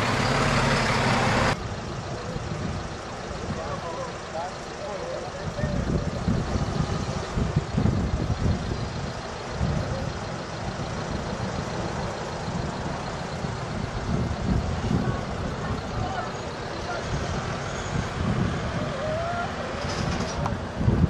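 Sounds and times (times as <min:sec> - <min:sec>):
car and lorry engines rumbling: 0:00.0 - 0:21.0
faint voices: 0:01.7 - 0:20.9.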